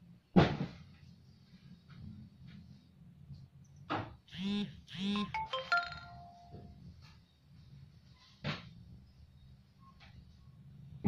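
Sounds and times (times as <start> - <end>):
electronic jingle: 5.0 - 6.7.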